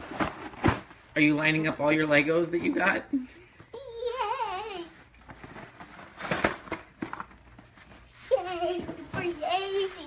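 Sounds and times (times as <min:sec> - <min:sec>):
cardboard boxes rustling: 0:00.0 - 0:01.9.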